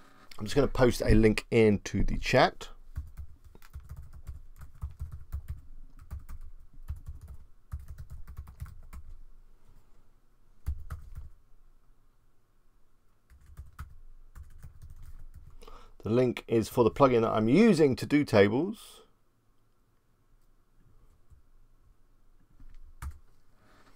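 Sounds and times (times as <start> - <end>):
typing on computer keyboard: 3.0 - 9.1, 10.6 - 11.3, 13.3 - 15.6, 23.0 - 23.2.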